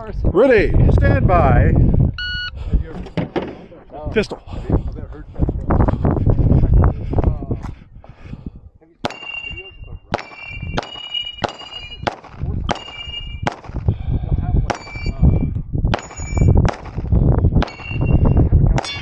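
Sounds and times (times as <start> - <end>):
pistol shots: 9.0 - 9.5, 10.1 - 13.8
steel target plate ringing: 9.1 - 12.1, 12.7 - 13.5, 16.0 - 16.5, 17.6 - 19.0.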